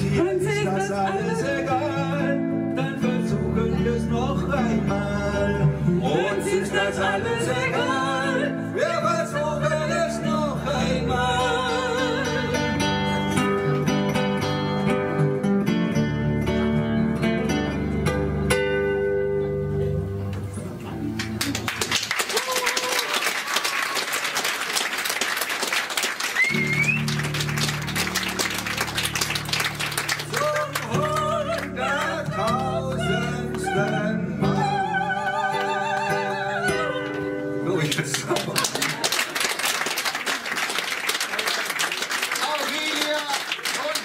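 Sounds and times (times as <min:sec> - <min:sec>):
acoustic guitar strumming: 0:00.0 - 0:21.4, 0:26.5 - 0:38.2
woman singing: 0:06.0 - 0:12.8, 0:30.3 - 0:37.3.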